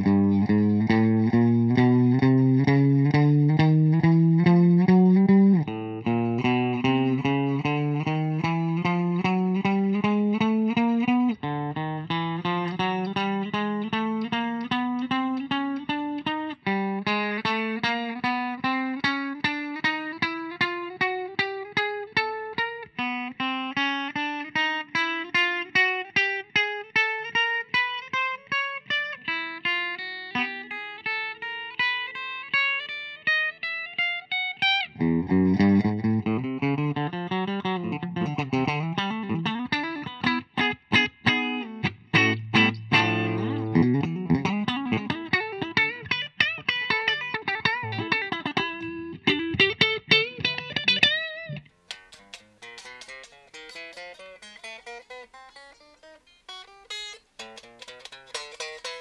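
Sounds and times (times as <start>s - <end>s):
electric guitar single notes: 0.0s - 21.8s, 31.8s - 59.0s
guitar lick with string bends: 0.0s - 59.0s.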